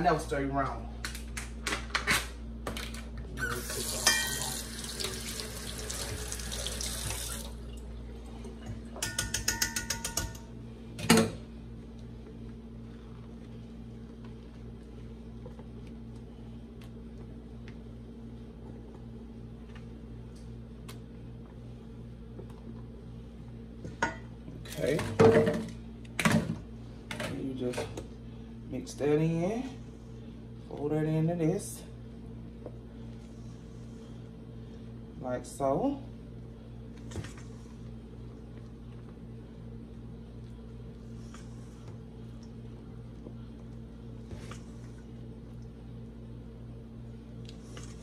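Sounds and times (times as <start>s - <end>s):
low steady hum: 0.0s - 48.0s
kitchen sink tap running: 3.4s - 7.6s.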